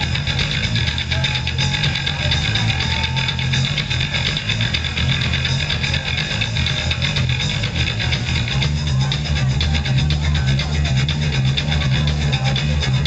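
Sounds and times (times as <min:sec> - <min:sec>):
bass guitar: 0:00.0 - 0:13.0
distorted electric guitars: 0:00.0 - 0:13.0
steady drum beat: 0:00.0 - 0:13.0.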